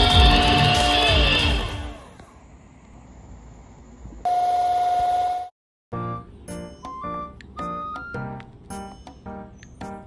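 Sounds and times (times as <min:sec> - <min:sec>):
background music: 0:00.0 - 0:02.0, 0:05.9 - 0:10.0.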